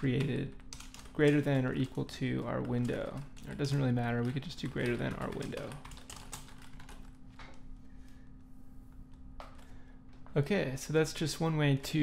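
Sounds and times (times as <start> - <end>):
computer keyboard typing: 0.0 - 7.6.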